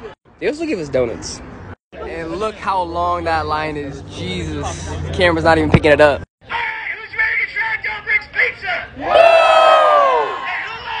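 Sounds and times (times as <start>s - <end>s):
crowd cheering and yelling: 8.9s - 11.0s.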